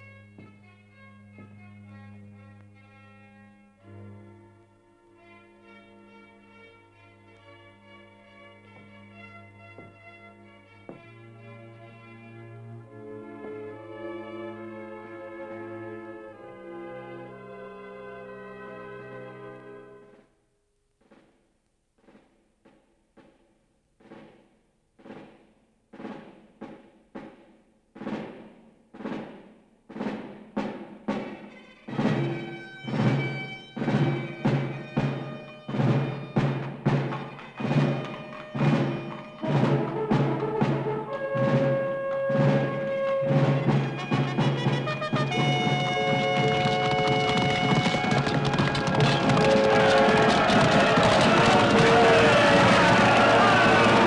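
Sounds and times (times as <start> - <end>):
soft struck beats: 21.0 - 52.0
held orchestral notes: 30.0 - 54.0.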